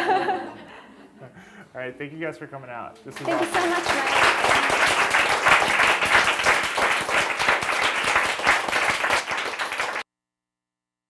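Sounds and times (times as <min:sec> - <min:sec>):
audience applauding: 0:03.1 - 0:10.0.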